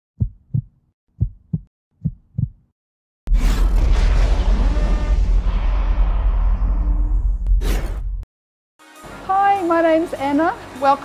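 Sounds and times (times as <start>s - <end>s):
heartbeat thumps: 0.2s - 2.7s.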